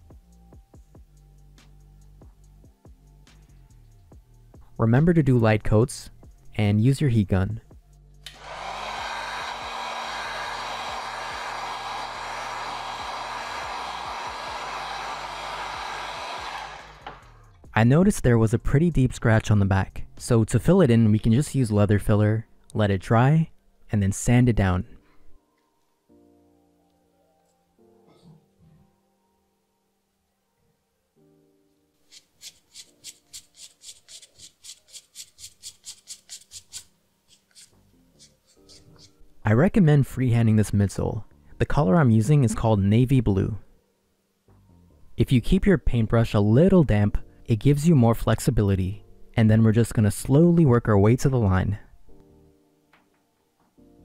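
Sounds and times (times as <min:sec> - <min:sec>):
sandpaper rubbing on leather: 0:32.1 - 0:38.8.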